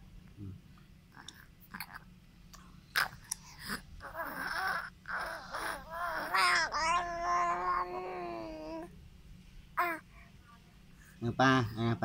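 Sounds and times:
infant crying: 3.0s - 8.9s.

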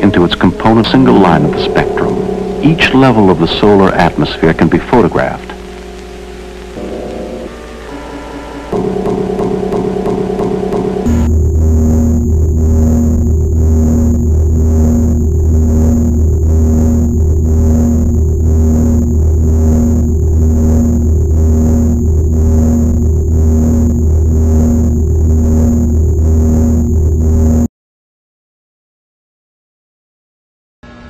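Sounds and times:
pulsing electronic drone: 0.0s - 27.7s
thin high whine: 0.0s - 27.7s.

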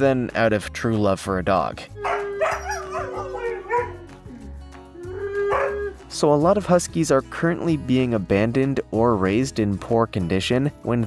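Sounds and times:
background music: 0.0s - 11.0s
dog howling: 2.0s - 4.4s, 5.0s - 6.0s.

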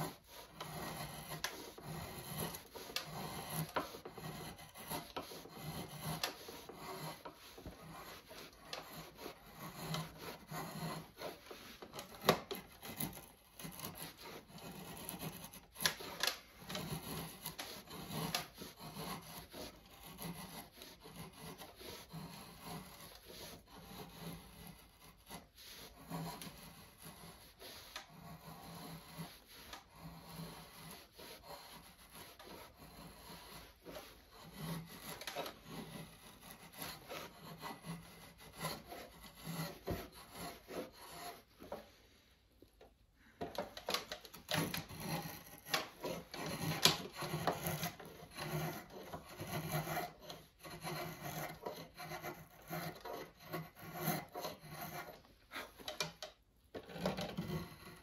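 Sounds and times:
drawknife scraping wood: 0.0s - 58.0s.

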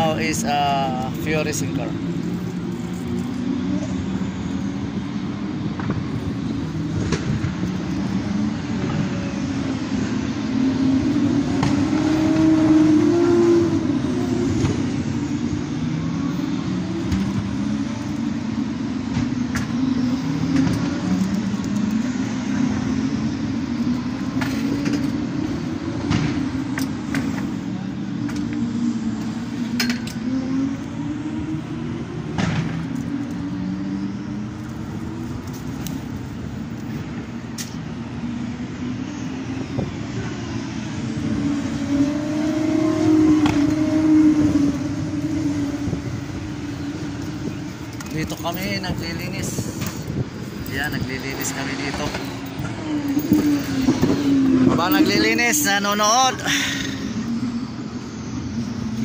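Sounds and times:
vehicle engines running: 0.0s - 59.0s.

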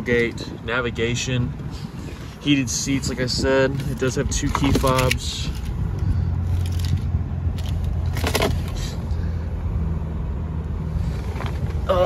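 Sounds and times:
car engine idling hum: 0.0s - 12.0s.

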